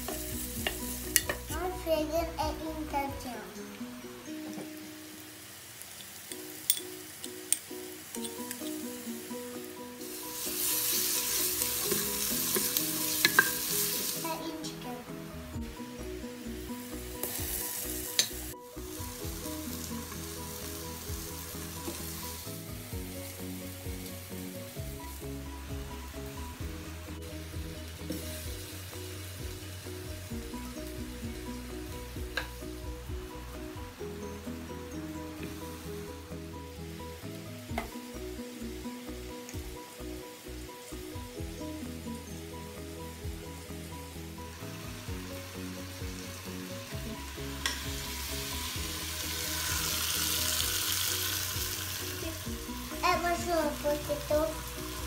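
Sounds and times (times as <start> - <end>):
background music: 0.0 - 55.0
chicken sizzling in pot: 0.0 - 55.0
tongs clicking: 0.6 - 1.4, 6.0 - 8.8, 11.9 - 13.5.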